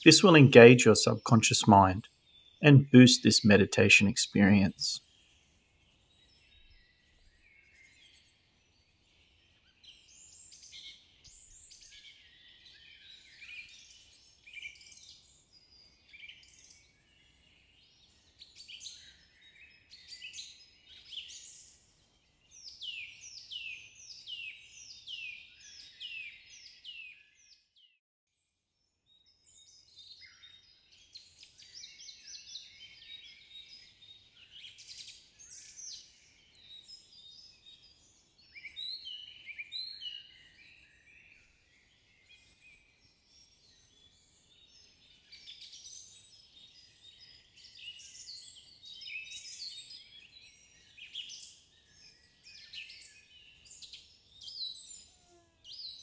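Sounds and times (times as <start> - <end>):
small birds chirping: 0.0 - 5.2, 29.2 - 56.0.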